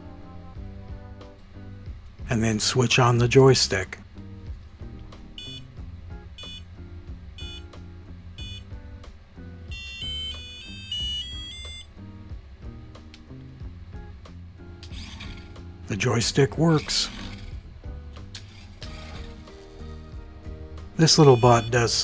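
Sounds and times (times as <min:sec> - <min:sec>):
soft background music: 0:00.0 - 0:22.0
electronic buzzer beeps: 0:05.4 - 0:05.8, 0:06.4 - 0:06.7, 0:07.4 - 0:07.8, 0:08.4 - 0:08.7, 0:09.7 - 0:11.9, 0:21.0 - 0:22.0.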